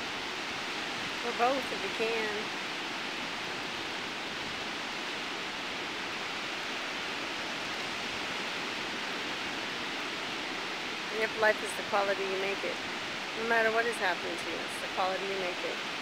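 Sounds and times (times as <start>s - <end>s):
ocean surf hissing: 0.0s - 16.0s.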